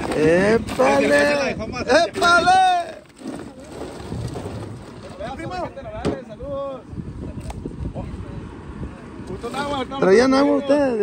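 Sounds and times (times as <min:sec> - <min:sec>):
ice shifting in a cooler: 0:00.0 - 0:05.7
plastic water bottles rustling: 0:00.0 - 0:05.7
low rough outdoor background noise: 0:00.0 - 0:11.0.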